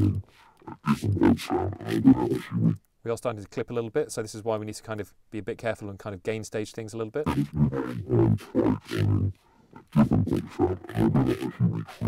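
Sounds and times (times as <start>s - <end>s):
growling distorted bass: 0.0s - 2.8s, 7.3s - 12.0s.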